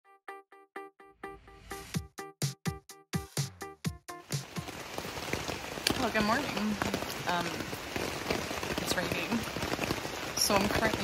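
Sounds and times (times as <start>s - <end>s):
rain on tent fabric: 4.2s - 11.0s.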